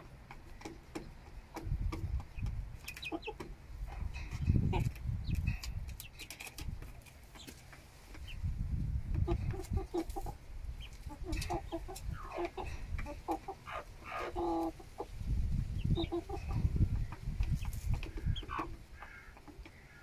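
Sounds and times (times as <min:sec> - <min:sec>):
beaks pecking at feed bowls: 0:00.0 - 0:08.4, 0:09.1 - 0:20.0
chickens clucking: 0:00.0 - 0:20.0.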